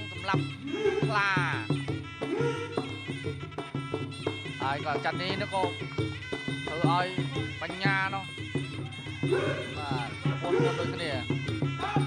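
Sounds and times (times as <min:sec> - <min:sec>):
reed oboe with sliding notes: 0:00.0 - 0:01.4, 0:02.0 - 0:12.0
commentator talking: 0:00.0 - 0:01.8, 0:04.6 - 0:05.8, 0:06.6 - 0:12.0
steady drumbeat: 0:00.0 - 0:12.0.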